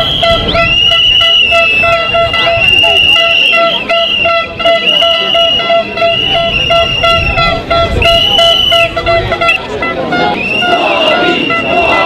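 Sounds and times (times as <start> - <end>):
wind rumble: 0.0 - 3.2, 6.1 - 12.0
crowd noise: 0.0 - 12.0
horn toots: 0.0 - 12.0.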